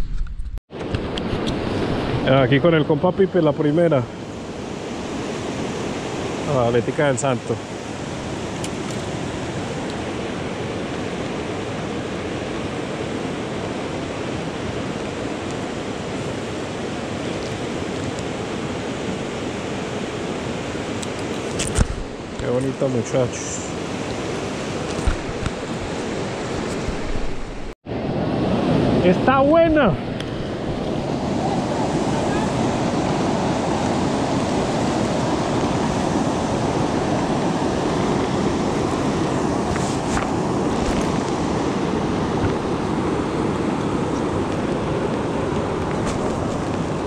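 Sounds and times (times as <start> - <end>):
whitewater rushing over rocks: 28.4 - 47.0.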